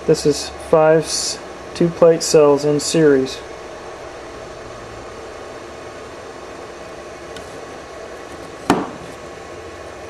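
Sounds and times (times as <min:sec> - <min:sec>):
hum and hiss: 0:00.0 - 0:10.0.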